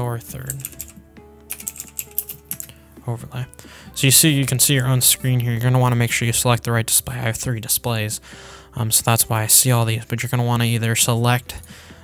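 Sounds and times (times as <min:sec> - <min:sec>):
soft background music: 0:00.0 - 0:12.0
keyboard typing: 0:00.3 - 0:02.7.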